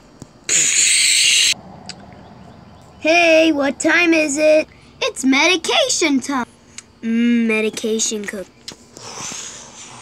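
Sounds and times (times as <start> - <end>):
mouth-made shushing hiss: 0.5 - 1.6, 8.9 - 10.0.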